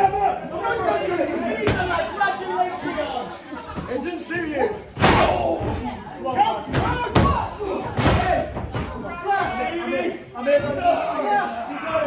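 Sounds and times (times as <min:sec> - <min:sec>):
crowd shouting and chatter: 0:00.0 - 0:12.0.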